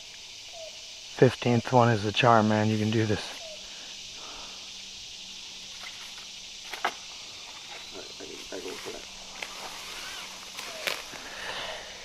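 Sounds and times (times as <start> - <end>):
insects chorus: 0.0 - 12.0
faint rustles: 3.6 - 12.0.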